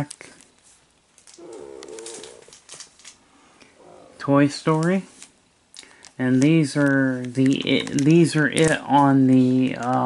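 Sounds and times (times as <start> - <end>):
plastic sleeves crinkling: 0.0 - 3.5, 4.2 - 10.0.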